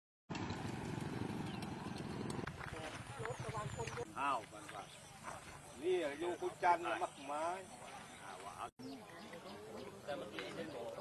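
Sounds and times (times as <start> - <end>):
motorcycle engine running: 0.3 - 4.1
people talking: 1.8 - 11.0.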